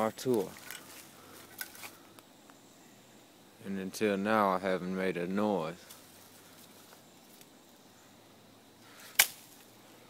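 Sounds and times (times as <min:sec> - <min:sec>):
sharp snap: 0:09.1 - 0:09.6.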